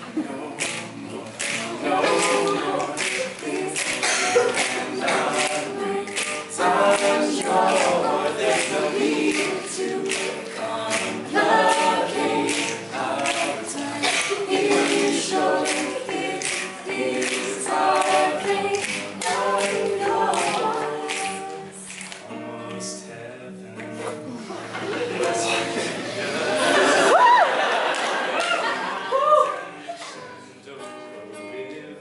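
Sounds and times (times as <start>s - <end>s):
a cappella group singing: 0.0s - 28.3s.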